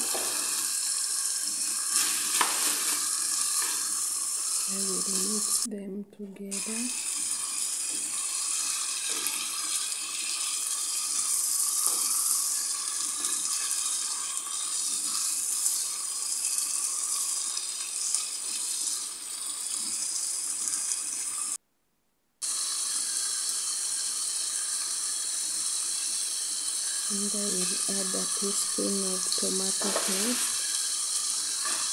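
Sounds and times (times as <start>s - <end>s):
meat and vegetables sizzling in a pan: 0.0s - 5.7s, 6.6s - 21.6s, 22.4s - 31.9s.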